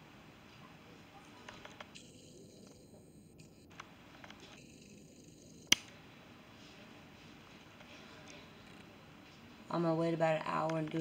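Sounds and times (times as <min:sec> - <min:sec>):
sharp click: 0:05.7 - 0:06.0.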